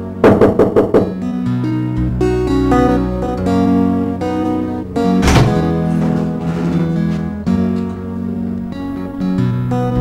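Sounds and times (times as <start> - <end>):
soft guitar music: 0.0 - 10.0
loud knocks on a door: 0.2 - 1.1, 5.2 - 5.7.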